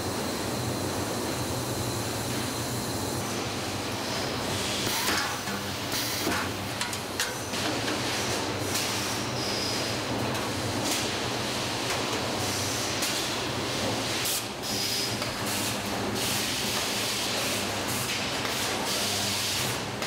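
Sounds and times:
machinery hum: 0.0s - 13.6s.

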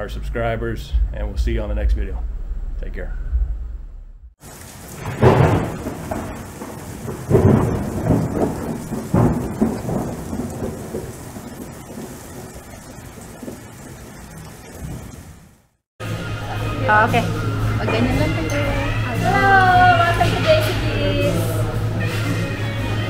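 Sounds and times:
thunder claps: 4.4s - 15.6s
steady rain: 4.4s - 15.8s.

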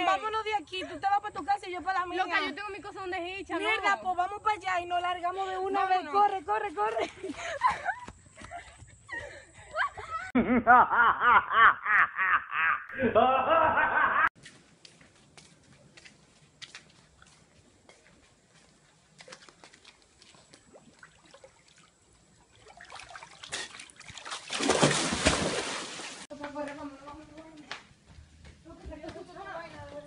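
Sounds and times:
laughter in rapid pulses: 7.0s - 14.3s.

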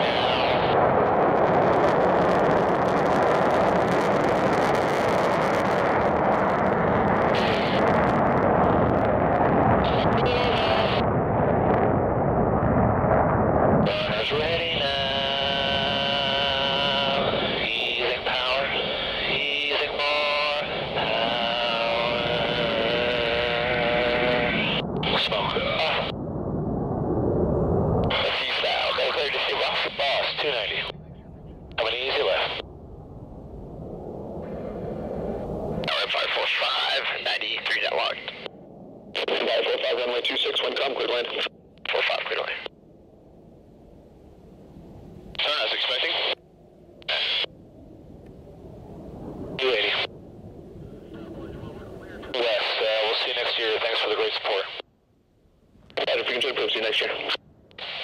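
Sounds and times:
garbled radio voice: 0.0s - 0.8s, 7.3s - 7.9s, 9.8s - 11.0s, 13.8s - 26.1s, 28.0s - 31.0s, 31.8s - 32.6s, 35.8s - 38.5s, 39.2s - 42.7s, 45.4s - 46.4s, 47.0s - 47.5s, 49.6s - 50.1s, 51.1s - 54.8s, 56.0s - 58.0s
muffled radio noise: 0.0s - 1.0s, 7.2s - 8.2s, 9.8s - 11.1s, 13.8s - 26.1s, 28.0s - 31.0s, 31.7s - 32.7s, 35.8s - 38.5s, 39.1s - 42.7s, 45.3s - 46.4s, 47.0s - 47.5s, 49.5s - 50.1s, 51.0s - 54.8s, 55.9s - 58.0s
steady pitched radio tone: 0.0s - 1.1s, 7.2s - 8.2s, 9.8s - 11.1s, 13.8s - 26.2s, 28.0s - 32.7s, 34.4s - 42.7s, 45.3s - 46.4s, 47.0s - 47.6s, 49.4s - 50.2s, 50.8s - 54.8s, 55.9s - 58.0s
faint low rumble: 0.0s - 58.0s.

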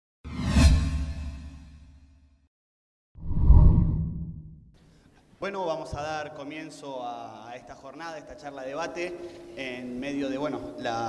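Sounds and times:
swoosh sound effect: 3.2s - 4.6s.

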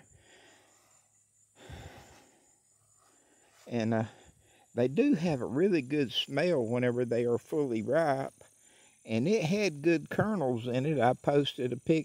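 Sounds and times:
soft breath out: 0.0s - 4.7s.

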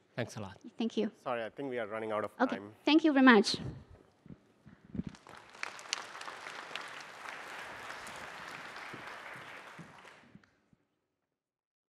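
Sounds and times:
audience applauding: 5.0s - 10.6s.

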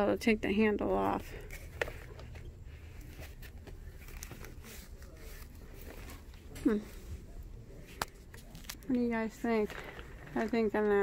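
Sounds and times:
store background noise: 0.0s - 11.0s
handbags rustling: 8.4s - 11.0s.

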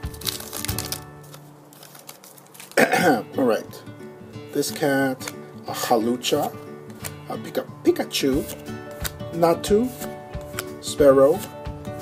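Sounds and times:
trading cards rustling: 0.0s - 3.2s, 4.6s - 7.6s, 8.3s - 12.0s
background music: 0.0s - 12.0s.

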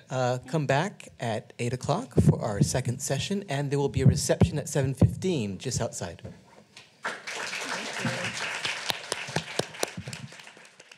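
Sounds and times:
audience applauding: 7.0s - 10.9s.

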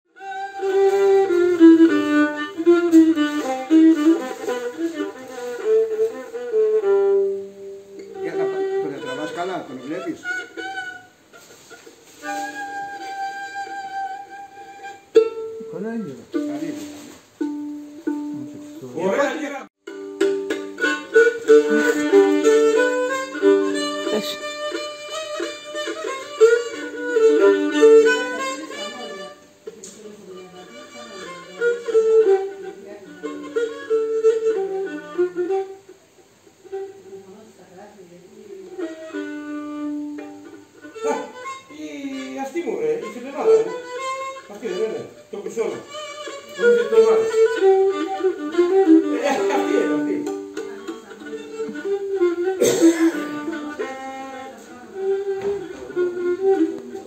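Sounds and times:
bowed lyra melody: 0.1s - 57.0s.

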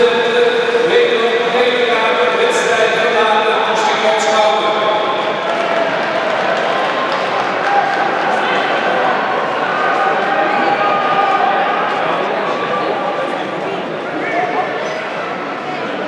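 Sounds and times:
man talking over public address: 0.0s - 5.4s
crowd and rink noise: 0.0s - 16.0s.

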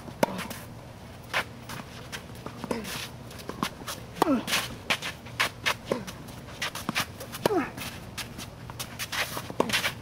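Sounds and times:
shoes scuffing on court: 0.0s - 10.0s
tennis ball strikes: 0.1s - 0.6s.

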